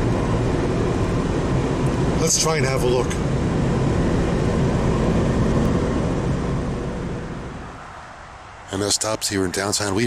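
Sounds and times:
car tyre and engine rumble: 0.0s - 10.0s.

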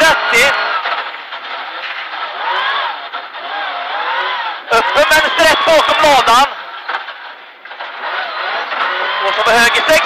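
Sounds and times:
car engine revving: 0.0s - 10.0s
tyres on gravel road: 0.0s - 10.0s.

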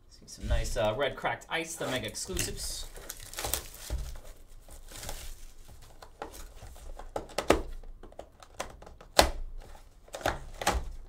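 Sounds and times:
plastic wrap tearing and crinkling: 1.7s - 7.8s.

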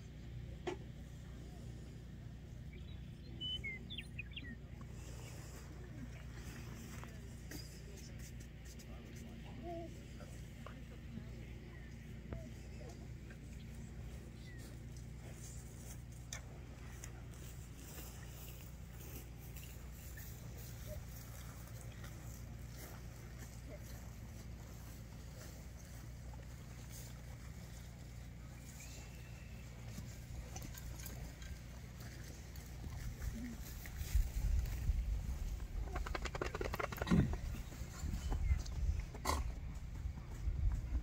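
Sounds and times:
low outdoor rumble: 0.0s - 41.0s.

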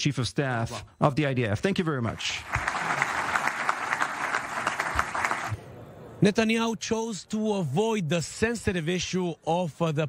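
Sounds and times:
audience applauding: 2.2s - 5.6s.

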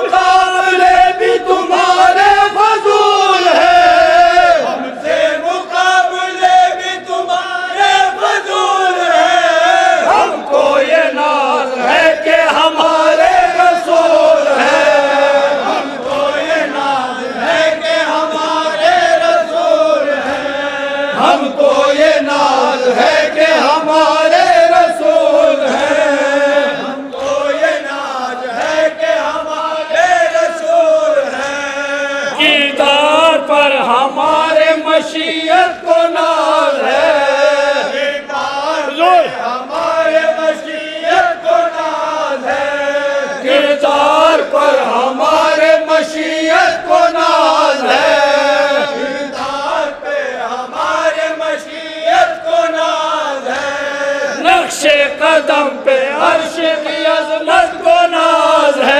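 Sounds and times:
men chanting a lament: 0.0s - 58.9s.

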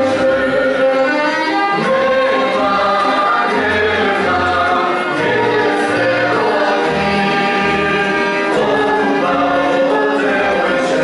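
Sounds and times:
instrumental accompaniment: 0.0s - 11.0s
voices singing folk song: 0.0s - 11.0s.

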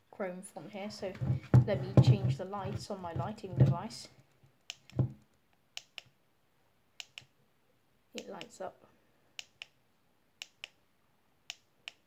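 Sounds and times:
dull thump: 1.1s - 4.0s, 5.0s - 5.2s.

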